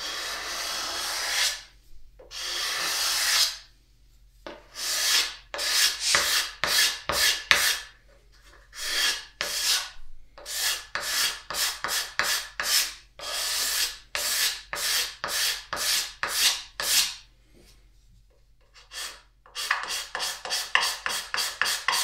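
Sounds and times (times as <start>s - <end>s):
hand file rasping on wood: 0.0s - 1.6s, 2.3s - 3.6s, 4.7s - 7.9s, 8.8s - 17.2s, 18.8s - 22.0s.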